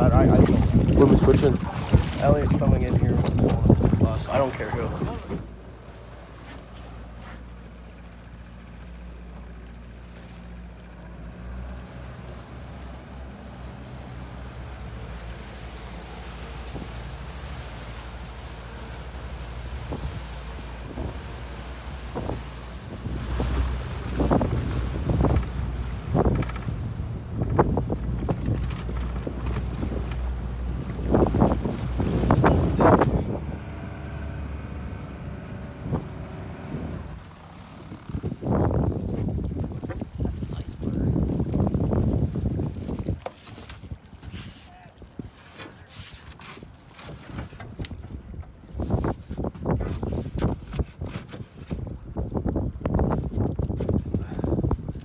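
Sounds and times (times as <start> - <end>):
wind on microphone: 0.0 - 5.6, 19.1 - 44.4, 46.6 - 55.0
thumps of boat on water: 0.0 - 8.5, 11.2 - 55.0
outboard motor running: 0.0 - 55.0.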